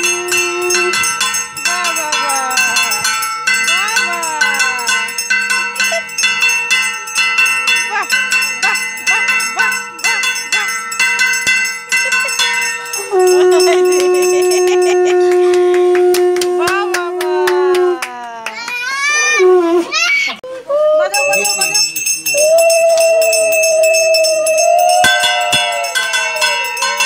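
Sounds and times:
conch shell blown: 0:00.0 - 0:03.2, 0:12.8 - 0:18.1, 0:19.3 - 0:19.9, 0:22.3 - 0:26.8.

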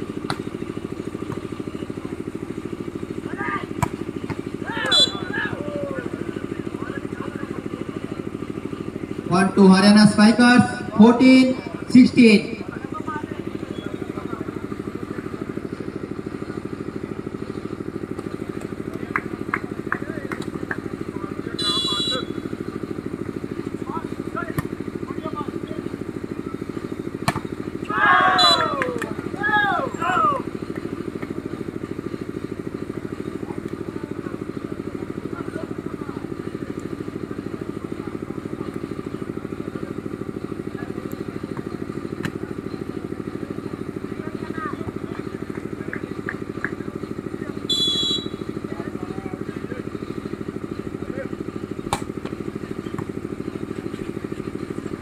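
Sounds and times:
low engine drone: 0:00.0 - 0:55.0
people shouting: 0:04.6 - 0:06.2, 0:27.8 - 0:30.5.

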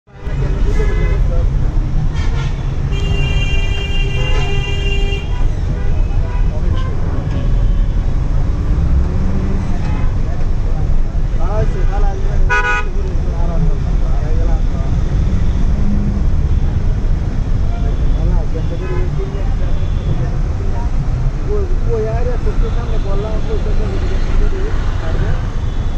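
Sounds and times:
traffic rumble from moving vehicle: 0:00.1 - 0:25.9
vehicle horn honking: 0:02.1 - 0:08.0, 0:12.5 - 0:13.0.

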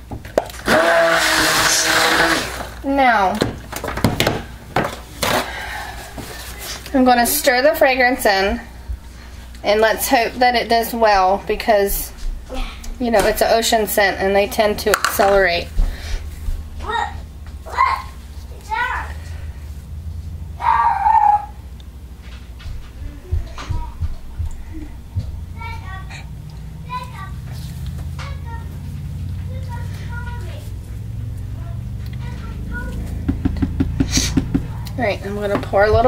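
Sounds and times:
utensil and plastic containers clattering: 0:00.0 - 0:06.9, 0:14.8 - 0:15.6
faint steady hum: 0:00.0 - 0:36.0
child calling and squealing: 0:20.6 - 0:21.6.

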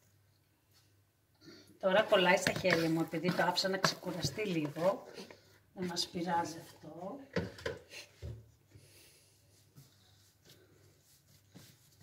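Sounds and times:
hands rubbing dough: 0:01.8 - 0:07.0, 0:08.5 - 0:12.0.

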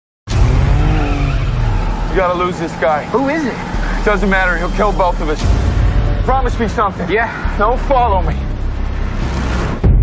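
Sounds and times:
car engine running hard: 0:00.3 - 0:09.9
deep rumble: 0:00.3 - 0:10.0
tyres squealing: 0:00.8 - 0:05.5.

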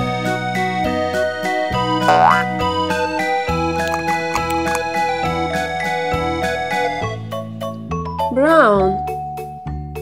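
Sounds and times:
children's electric piano music: 0:02.1 - 0:02.5
rising cartoon pitch glide: 0:02.1 - 0:02.5.

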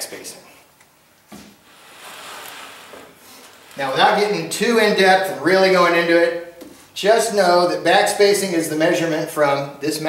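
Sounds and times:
rubber tread scraping wood: 0:01.4 - 0:05.0.

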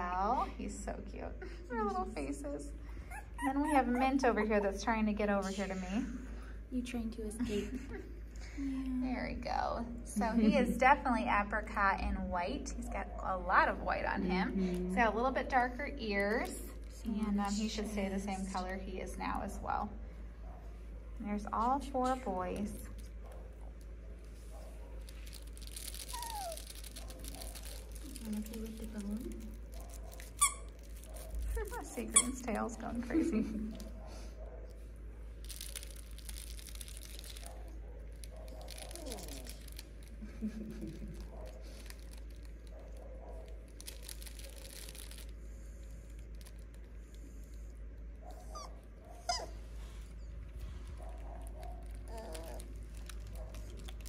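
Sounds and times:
puppy whimpering: 0:03.0 - 0:04.4, 0:25.9 - 0:27.0, 0:38.8 - 0:39.6, 0:48.2 - 0:50.5, 0:52.0 - 0:52.8
rustling: 0:21.6 - 0:32.8, 0:33.6 - 0:54.0
puppies scrabbling on a pad: 0:22.0 - 0:32.4.

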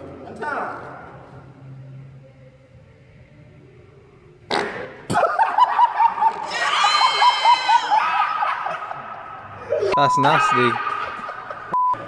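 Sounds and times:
loud fart: 0:04.5 - 0:05.3.

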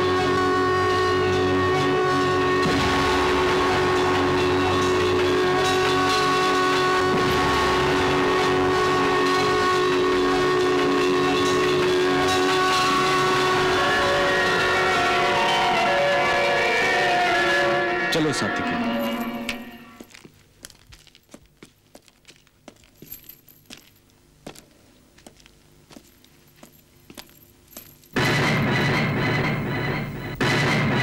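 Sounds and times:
dramatic orchestral score: 0:00.0 - 0:20.0.

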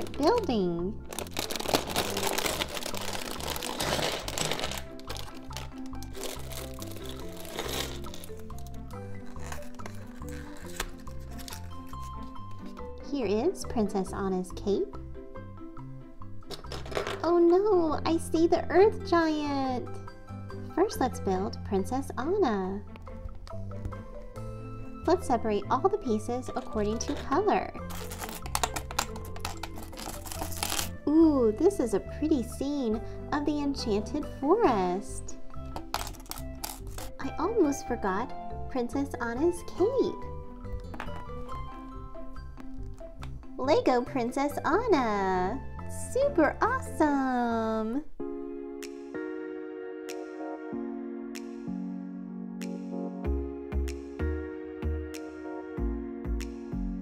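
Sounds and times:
plastic bag crinkling: 0:00.0 - 0:12.4, 0:26.4 - 0:31.0, 0:35.7 - 0:37.2
background music with steady beat: 0:00.0 - 0:47.3, 0:48.1 - 0:57.0
plastic pieces clicking and clattering: 0:01.1 - 0:08.8, 0:16.5 - 0:17.2, 0:27.9 - 0:30.9
background music with bass: 0:48.2 - 0:57.0.

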